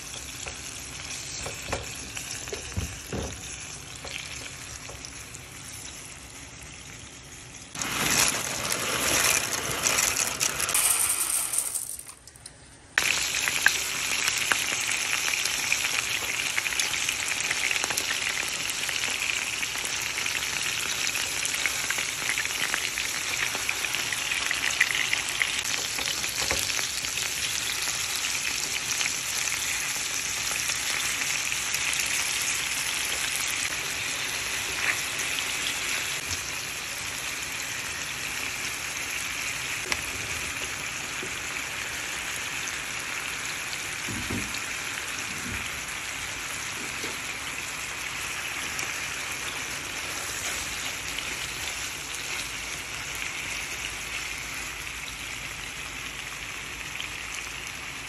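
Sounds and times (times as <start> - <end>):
chicken sizzling in oil: 0.0 - 10.6, 13.0 - 58.0.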